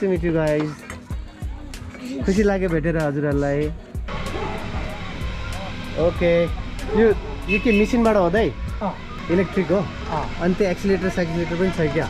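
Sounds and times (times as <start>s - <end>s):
background music with light beat: 0.0s - 12.0s
faint voices: 3.8s - 12.0s
electric potter's wheel drone: 4.1s - 12.0s.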